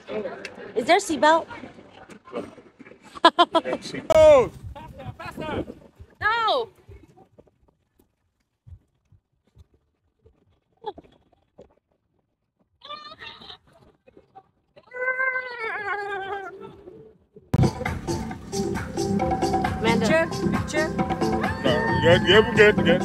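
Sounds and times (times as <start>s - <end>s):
wavering vocal cry: 14.8s - 16.9s, 19.2s - 23.0s
loud music: 17.6s - 23.0s.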